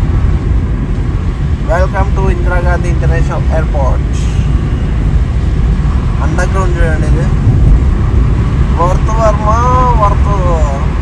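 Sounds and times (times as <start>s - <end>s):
car driving from inside cabin: 0.0s - 11.0s.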